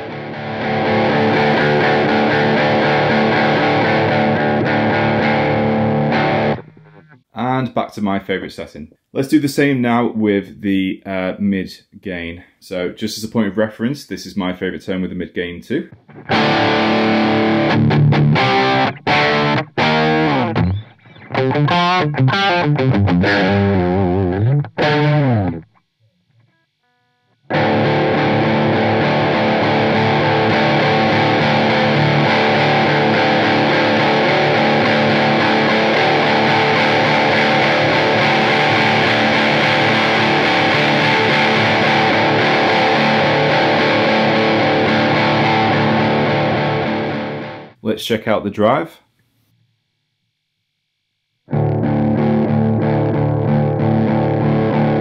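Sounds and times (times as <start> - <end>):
distorted electric guitar chords: 0.0 - 7.3, 15.9 - 26.5, 27.2 - 47.8, 51.5 - 55.0.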